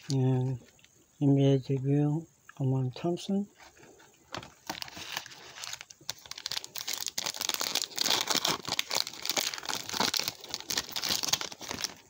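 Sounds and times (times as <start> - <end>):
foil wrapper crinkling and tearing: 4.4 - 12.0.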